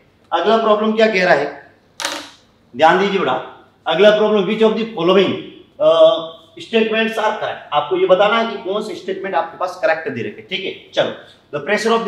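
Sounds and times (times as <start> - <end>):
man speaking: 2.7 - 12.0.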